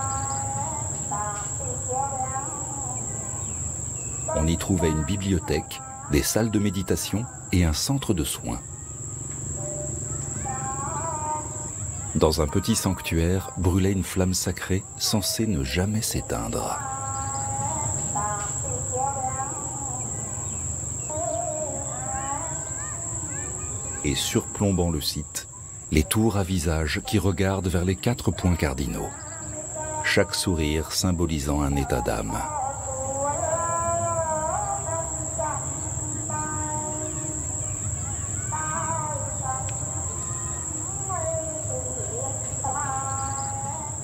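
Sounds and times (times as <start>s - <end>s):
insects droning: 0.0s - 44.0s.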